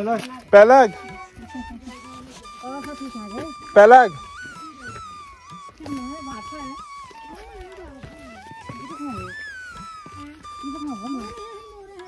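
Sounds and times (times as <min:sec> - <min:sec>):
background music with gliding melody: 0:00.0 - 0:12.0
voice under music: 0:00.0 - 0:12.0.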